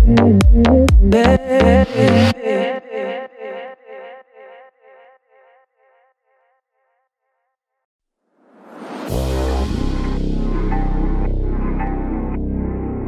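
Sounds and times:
electronic dance music: 0.0s - 2.4s
echoing pitched figure: 9.1s - 13.0s.

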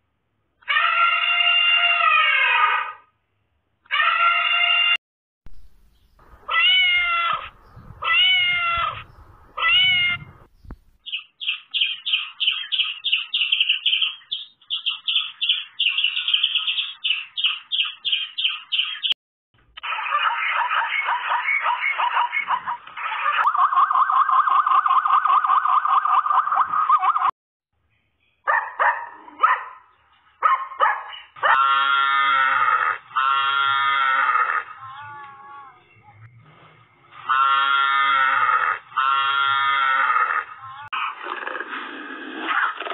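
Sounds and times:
cat meowing: 6.5s - 9.0s, 9.6s - 10.3s
harsh pulsing animal call: 31.4s - 35.8s, 37.2s - 41.7s.

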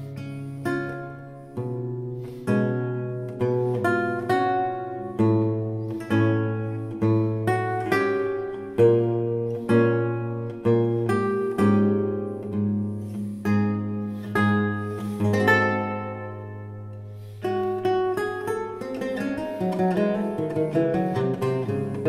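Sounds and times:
lute playing slow piece: 0.0s - 22.0s.

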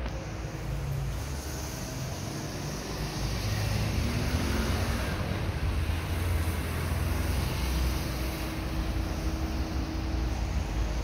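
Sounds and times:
passing car traffic: 0.0s - 11.0s.

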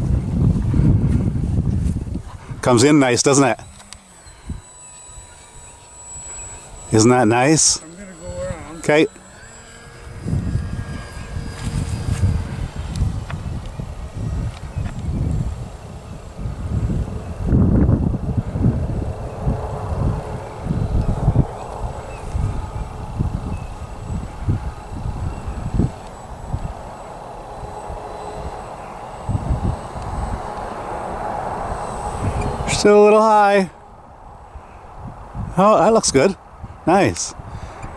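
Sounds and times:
distant model airplane motor hum: 0.0s - 37.9s
wind buffeting microphone: 0.0s - 37.9s.

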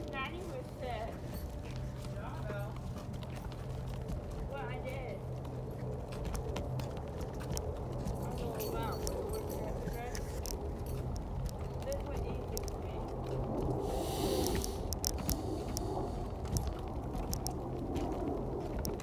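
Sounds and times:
footsteps: 0.0s - 19.0s
steady low hum: 0.0s - 19.0s.

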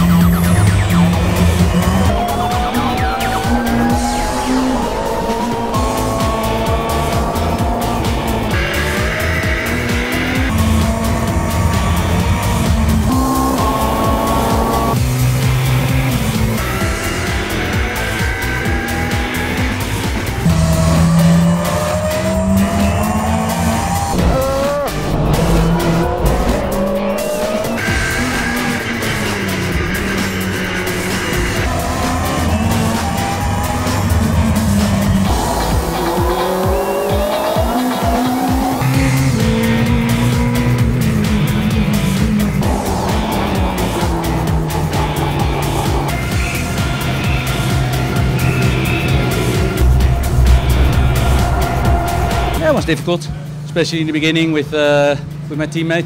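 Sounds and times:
race car engine revving through gears: 0.0s - 52.8s
background music: 0.0s - 54.4s.

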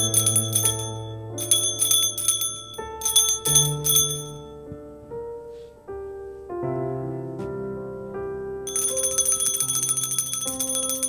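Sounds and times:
bells jingling rapidly: 0.0s - 4.3s, 8.7s - 11.0s
keyboard chords: 0.0s - 11.0s.

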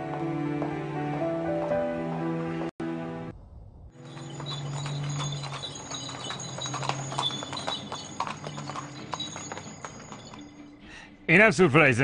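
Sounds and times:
horse hooves on pavement: 4.0s - 10.6s.

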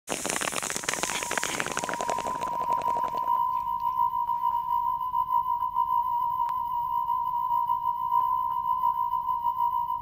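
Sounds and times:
crackling static: 0.0s - 4.4s
steady high-pitched tone: 1.0s - 10.0s.

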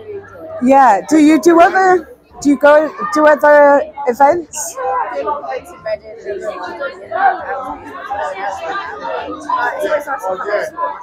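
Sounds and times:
background chatter: 0.0s - 11.0s
woman talking: 0.6s - 4.8s.

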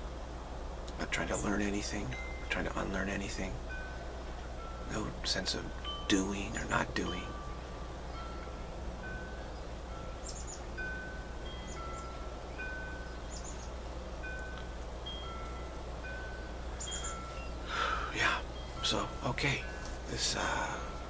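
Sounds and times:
low steady hum: 0.0s - 21.0s
soft chime notes: 1.2s - 21.0s.

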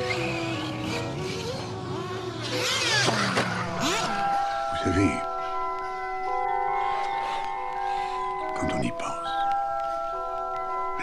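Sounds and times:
small engines revving hard: 0.0s - 4.7s.

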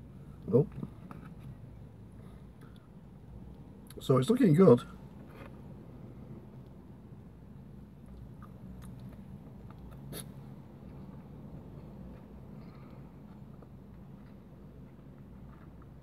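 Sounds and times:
chewing and biting burger: 8.0s - 16.0s.

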